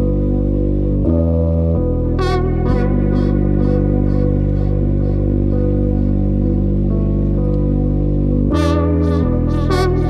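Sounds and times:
low bass drone: 0.0s - 10.0s
synth notes: 0.0s - 10.0s.

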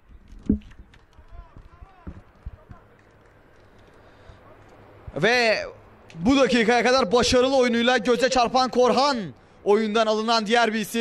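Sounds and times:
distant shouts of players: 1.2s - 3.0s.

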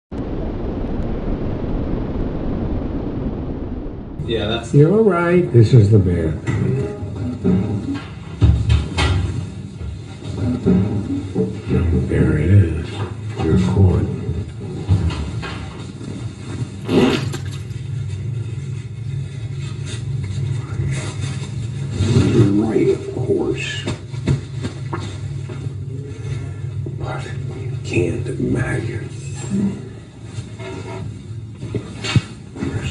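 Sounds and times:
low steady rumbling: 0.1s - 32.9s.

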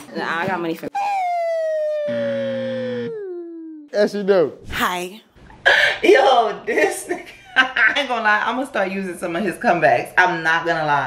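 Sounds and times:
note sliding down in pitch: 1.0s - 3.9s.

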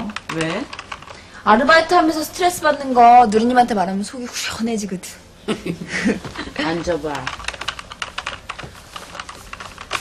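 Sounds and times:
fast typing on keyboard: 0.0s - 1.2s, 6.6s - 10.0s.

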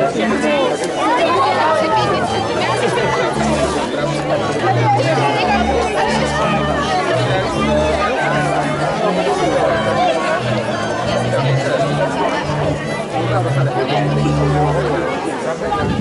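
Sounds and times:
crowd chatter: 0.0s - 16.0s
music with low bass line: 1.3s - 15.1s.

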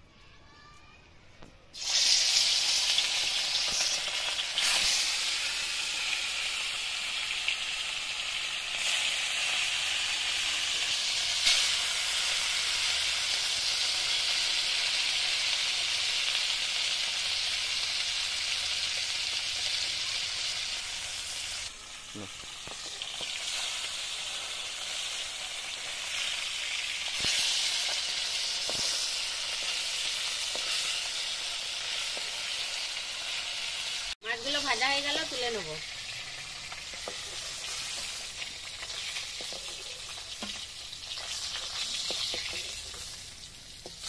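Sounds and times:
fish sizzling in hot oil: 1.7s - 44.0s.

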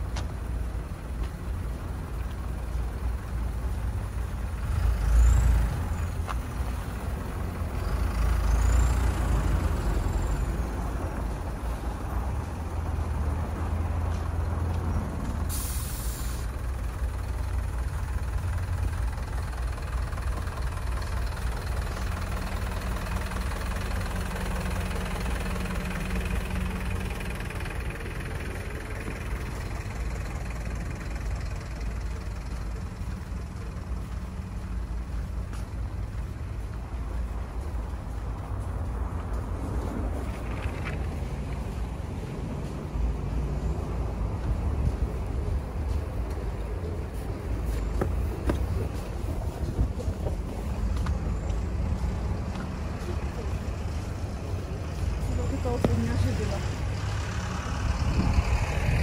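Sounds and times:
truck engine rumbling: 0.0s - 59.0s
short sharp hiss: 15.5s - 16.6s.

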